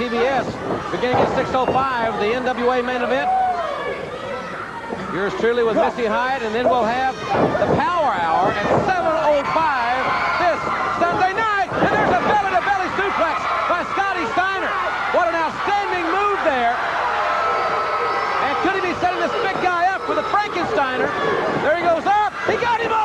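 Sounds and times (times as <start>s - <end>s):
commentator talking: 7.8s - 16.8s, 18.4s - 23.0s.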